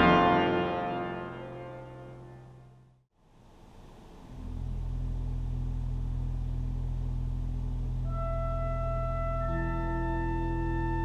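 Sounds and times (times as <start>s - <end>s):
pipe organ low held chord: 0.0s - 2.8s, 4.3s - 11.0s.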